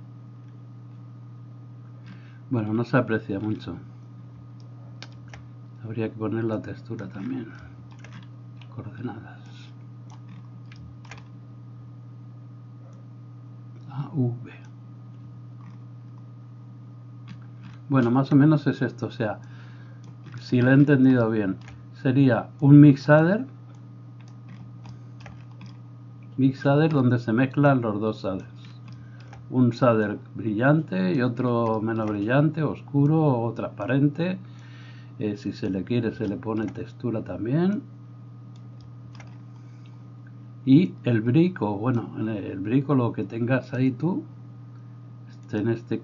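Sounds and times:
low electrical hum: 0.0 - 46.0
computer input clicks: 4.6 - 5.5, 6.5 - 11.4, 17.2 - 23.1, 23.7 - 27.3, 28.1 - 29.5, 30.8 - 33.2, 35.3 - 37.0, 38.5 - 39.8.

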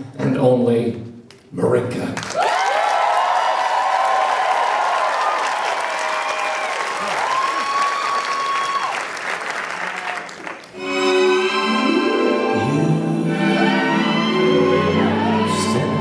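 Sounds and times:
audience applauding: 2.2 - 10.8
whooping: 2.4 - 9.2, 13.6 - 16.0
orchestral music: 10.8 - 16.0.

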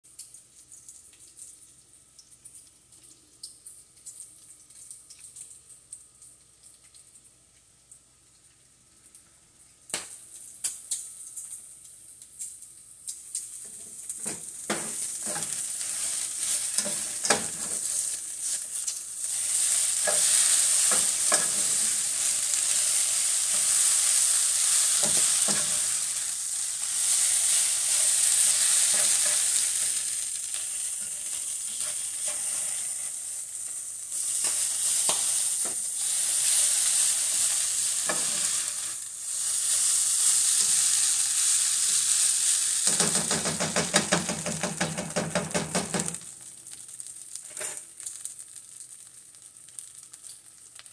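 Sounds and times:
food sizzling in pans: 0.1 - 50.9
spatula scraping pan: 13.7 - 26.0, 26.9 - 30.0, 30.9 - 33.2.

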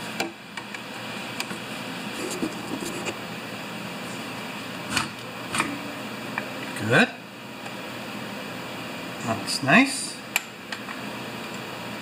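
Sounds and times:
workshop hum: 0.0 - 12.0.

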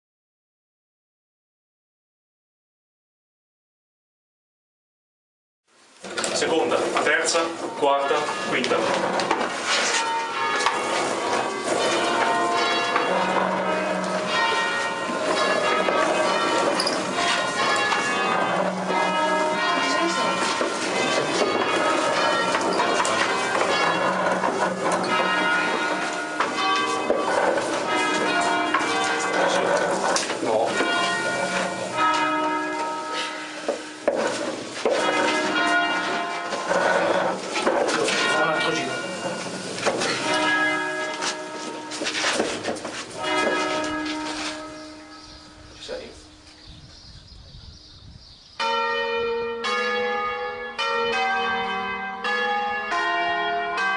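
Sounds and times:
church bells pealing: 6.3 - 53.9.

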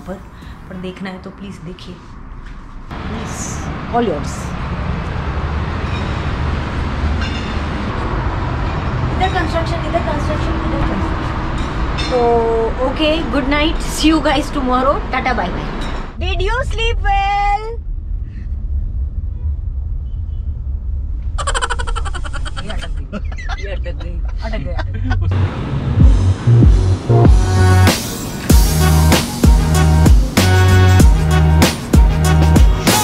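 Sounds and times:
road traffic rumble: 0.0 - 33.0
car cabin engine and road rumble: 21.9 - 28.6.

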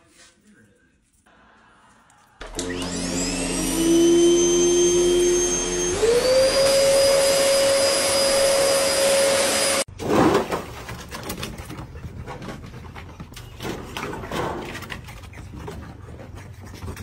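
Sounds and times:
vacuum cleaner motor whine: 2.4 - 9.9.

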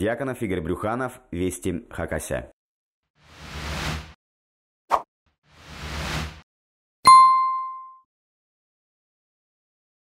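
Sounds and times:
bright bell-like ding: 7.1 - 8.0.

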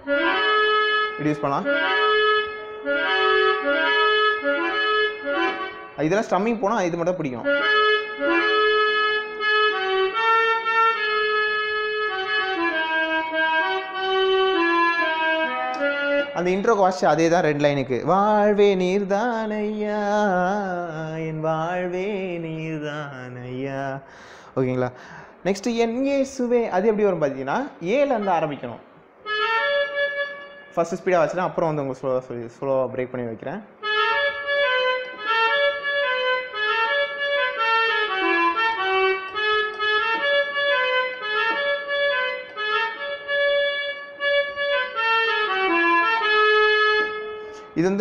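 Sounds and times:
electronic keyboard melody: 0.0 - 24.2, 25.0 - 32.6, 33.4 - 48.0.

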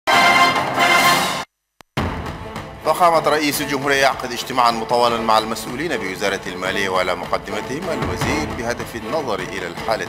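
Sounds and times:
news theme music: 0.1 - 10.0.

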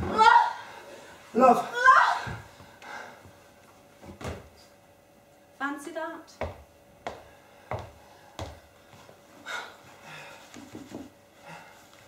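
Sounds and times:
heeled shoes on wooden floor: 6.4 - 8.7.

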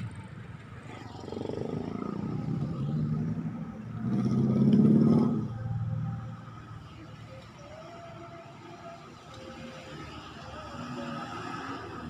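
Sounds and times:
vehicles passing: 0.0 - 12.0.

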